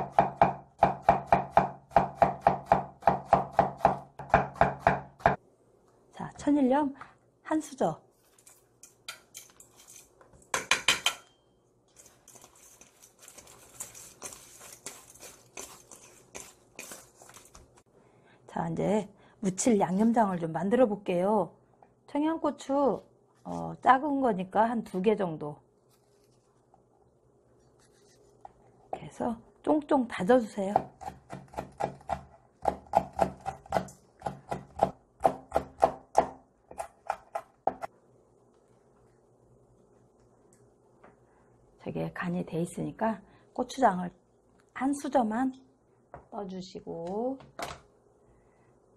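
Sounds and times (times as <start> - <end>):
knife chopping on wooden board: 0.0 - 5.4.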